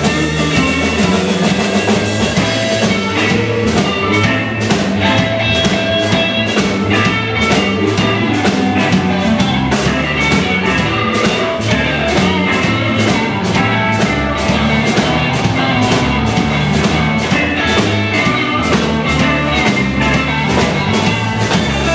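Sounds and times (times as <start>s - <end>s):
bass: 0.0s - 21.9s
drum kit beat: 0.0s - 21.9s
electric guitars: 0.0s - 21.9s.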